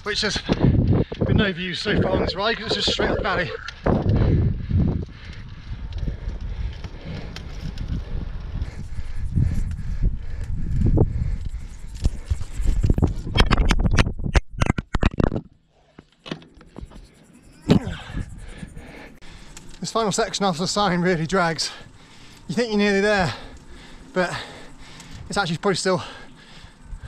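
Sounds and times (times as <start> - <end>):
wind rumbling on microphone: 0.0 - 15.5, 16.7 - 19.5, 26.5 - 27.0
heavy breathing: 2.3 - 13.2, 16.8 - 19.8, 21.4 - 25.4, 26.0 - 27.0.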